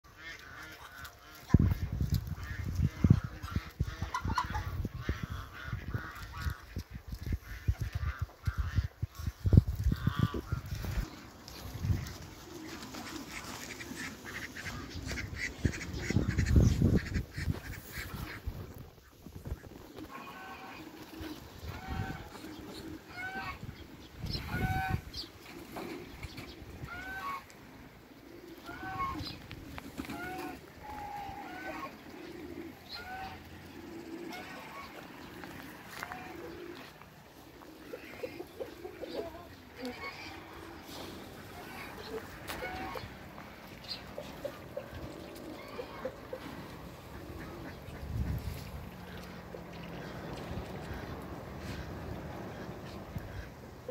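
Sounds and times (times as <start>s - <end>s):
geese honking: 0.1s - 53.9s.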